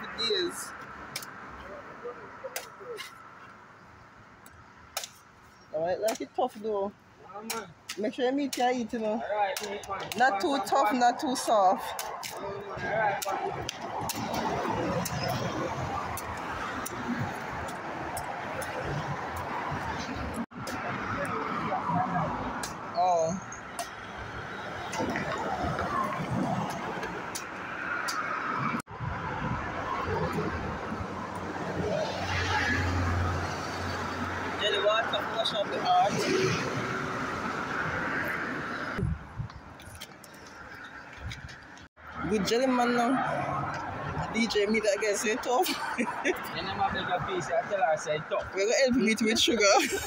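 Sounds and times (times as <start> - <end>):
cars passing on road: 0.0 - 50.0
machete striking coconut: 4.9 - 5.2, 6.0 - 6.3.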